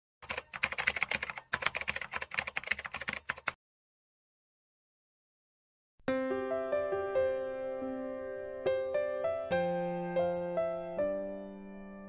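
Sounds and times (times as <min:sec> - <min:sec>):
rapid keyboard clicks: 0:00.2 - 0:03.6.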